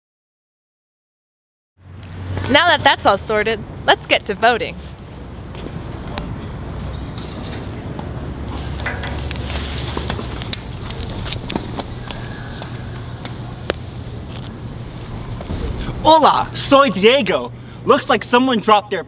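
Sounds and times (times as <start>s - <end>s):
footsteps on concrete sidewalk: 2.0s - 2.8s, 4.1s - 15.7s
steady low rumble: 8.2s - 17.9s.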